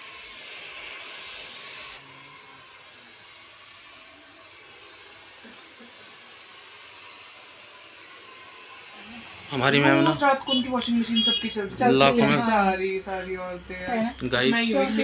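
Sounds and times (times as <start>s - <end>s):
hair dryer blowing: 0.0s - 13.6s.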